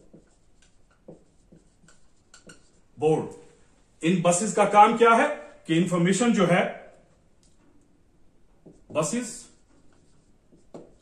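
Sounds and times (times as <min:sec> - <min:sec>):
pen scratching handwriting: 0:00.0 - 0:02.9, 0:08.6 - 0:11.0.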